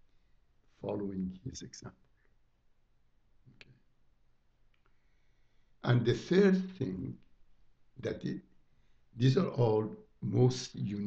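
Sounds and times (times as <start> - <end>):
man speaking: 0.8 - 2.0, 5.8 - 7.2, 8.0 - 8.4, 9.2 - 11.0.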